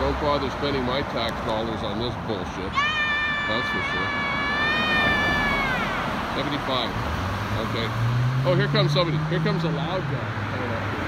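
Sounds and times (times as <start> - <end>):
street traffic passing: 0.0 - 11.0.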